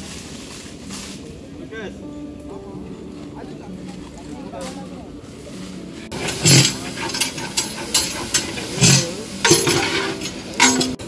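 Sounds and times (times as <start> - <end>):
ladle scraping metal pot: 6.1 - 11.0.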